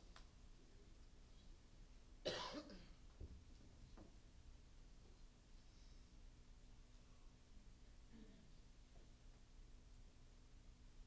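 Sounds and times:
person coughing: 2.2 - 3.0.

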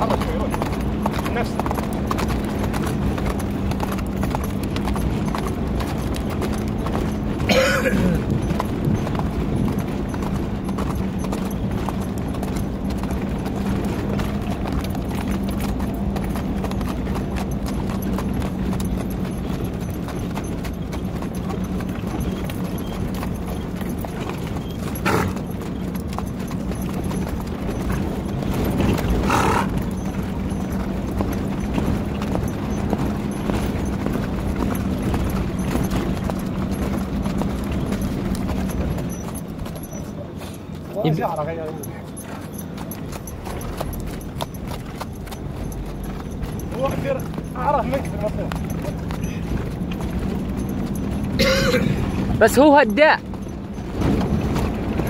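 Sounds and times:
horse hoofbeats on sand: 0.0 - 55.0.

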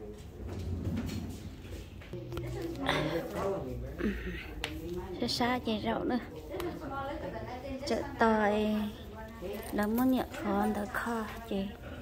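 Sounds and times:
steady low hum: 0.0 - 4.5.

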